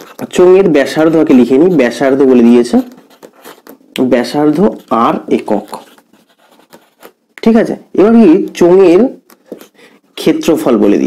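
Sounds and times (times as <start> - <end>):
marker scratching on whiteboard: 0.0 - 7.2, 9.3 - 10.0
person speaking: 0.0 - 11.0.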